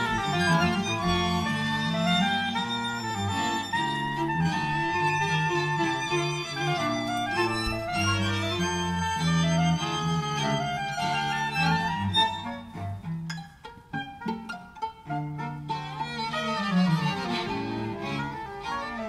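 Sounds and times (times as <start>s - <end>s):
low cello line: 0.0s - 19.0s
string quartet playing jazzy music: 0.0s - 19.0s.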